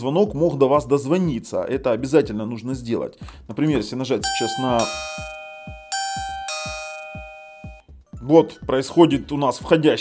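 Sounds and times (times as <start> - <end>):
doorbell ding-dong chime: 4.2 - 7.8.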